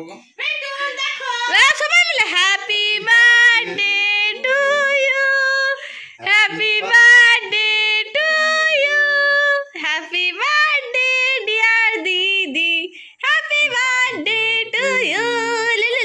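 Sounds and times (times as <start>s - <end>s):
women singing a celebration song: 0.3s - 16.0s.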